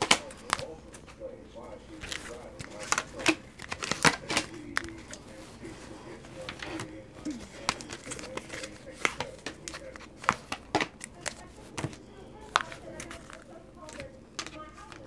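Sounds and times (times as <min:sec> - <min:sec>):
cards tapping on tabletop: 0:07.6 - 0:15.0.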